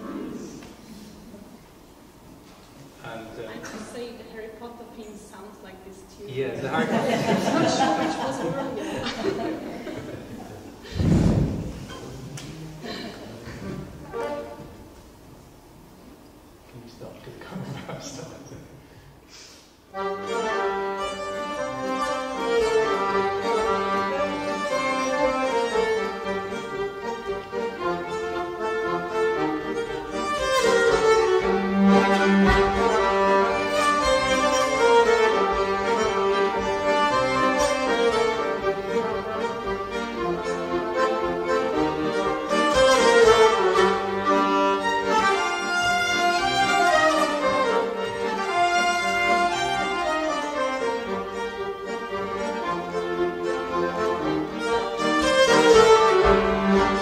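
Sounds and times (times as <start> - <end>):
accordion: 6.8 - 14.9, 19.9 - 57.0
fiddle: 7.2 - 15.0, 19.9 - 57.0.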